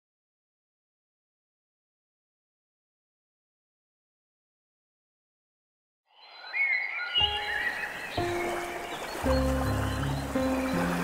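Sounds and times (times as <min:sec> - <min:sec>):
whistled bird calls: 0:06.1 - 0:11.0
soft piano notes: 0:07.2 - 0:11.0.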